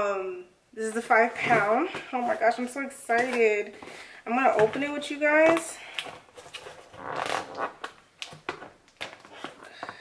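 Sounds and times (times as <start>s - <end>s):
packaging crinkling and clicking: 5.5s - 10.0s.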